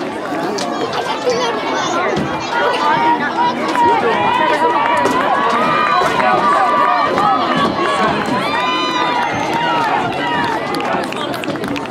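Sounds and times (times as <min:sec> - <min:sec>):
spectators shouting and cheering: 0:00.0 - 0:11.9.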